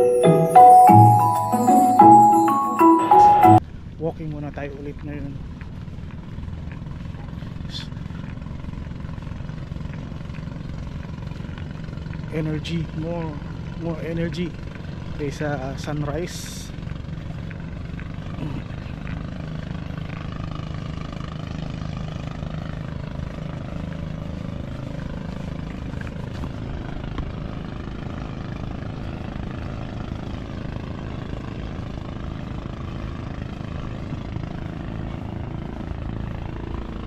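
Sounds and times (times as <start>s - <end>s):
low engine drone: 5.4s - 37.0s.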